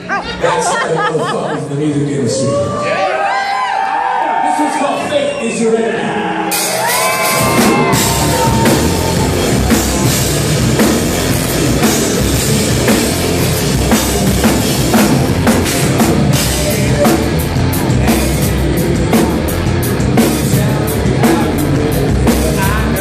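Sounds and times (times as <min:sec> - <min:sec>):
distorted electric guitars: 0:06.4 - 0:23.0
drum and cymbal hits: 0:06.5 - 0:23.0.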